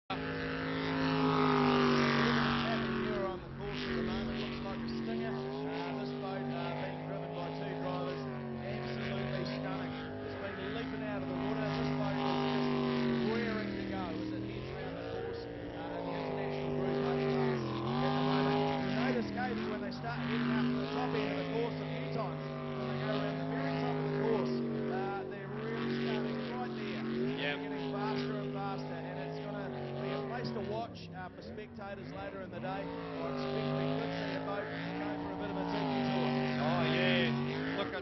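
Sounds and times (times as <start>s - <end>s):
boat engine running hard: 0.0s - 38.0s.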